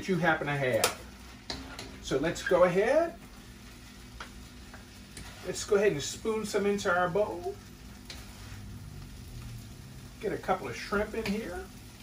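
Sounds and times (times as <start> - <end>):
food sizzling in a wok: 0.0 - 12.0
low steady hum: 0.0 - 12.0.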